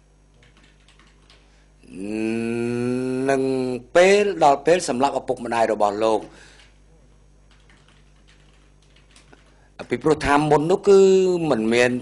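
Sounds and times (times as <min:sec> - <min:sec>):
low voice holding a long vowel: 0:01.8 - 0:03.9.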